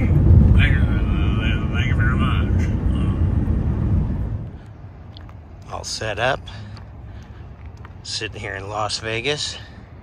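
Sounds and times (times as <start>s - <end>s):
quiet outdoor background: 0.0s - 10.0s
road and engine noise in truck: 0.0s - 10.0s.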